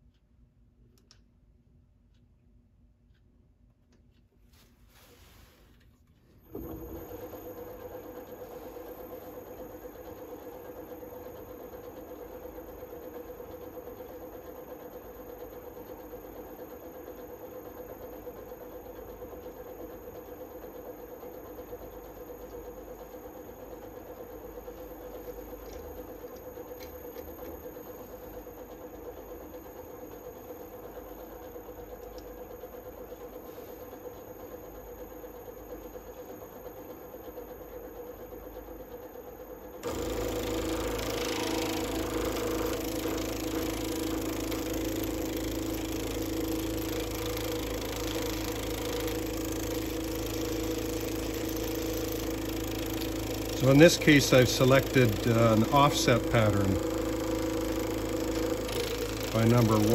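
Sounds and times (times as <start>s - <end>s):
wood lathe motor hum: 6.4s - 59.9s.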